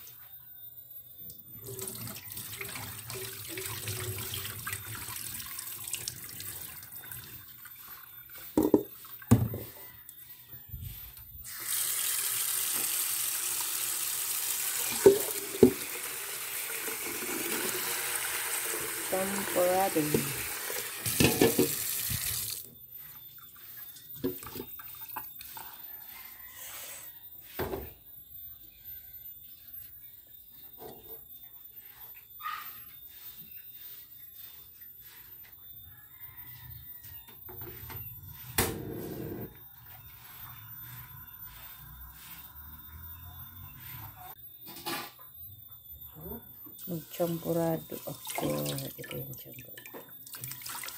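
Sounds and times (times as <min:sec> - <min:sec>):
tap water running into sink: 0:01.6 - 0:07.3, 0:11.7 - 0:22.7, 0:47.9 - 0:50.9.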